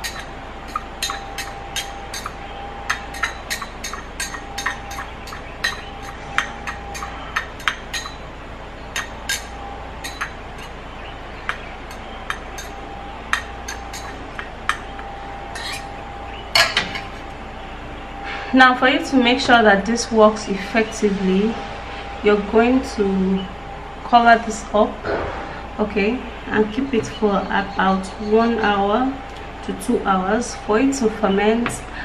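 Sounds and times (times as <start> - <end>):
utensil clinking in glass bowl: 0.0 - 8.3, 8.9 - 10.8, 11.5 - 15.0
utensil clatter: 0.0 - 17.3.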